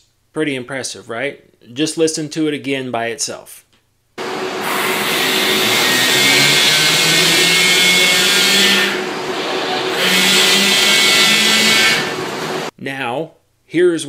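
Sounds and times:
electric motor hum with hiss: 4.2 - 12.7.

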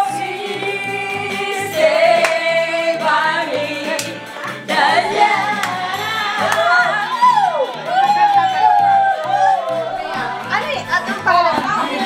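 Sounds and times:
backing track with bass line: 0.0 - 12.0
person singing karaoke into microphone: 0.0 - 12.0.

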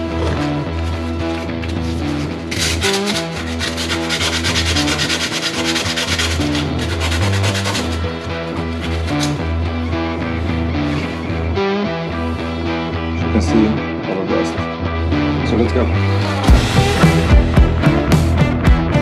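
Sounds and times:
background music: 0.0 - 19.0
sandpaper rubbing on metal: 1.8 - 9.4.

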